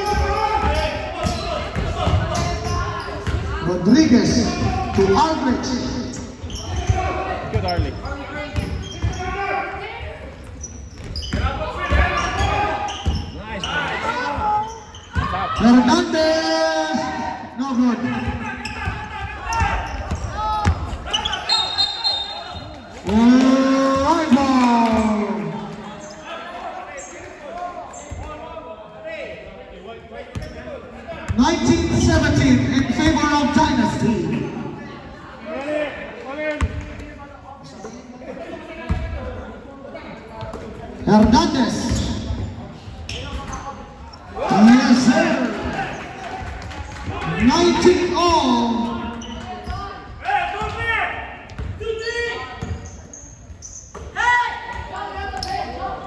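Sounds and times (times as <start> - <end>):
voices shouting in a hall: 0.0 - 40.3, 41.0 - 56.0.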